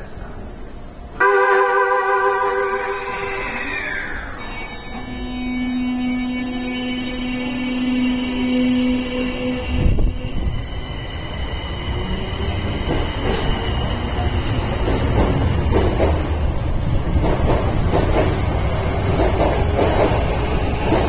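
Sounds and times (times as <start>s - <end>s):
train cars rumbling past: 2.0s - 21.0s.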